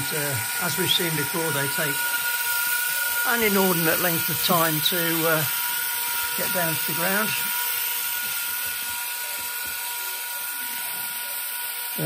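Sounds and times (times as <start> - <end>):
electric actuators whining: 0.0 - 12.0.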